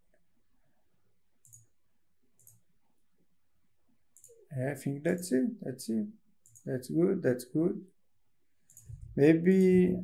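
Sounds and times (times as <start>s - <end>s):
computer mouse clicks: 1.4s - 1.8s, 2.4s - 2.7s, 4.2s - 4.4s, 6.4s - 6.7s, 8.6s - 9.7s.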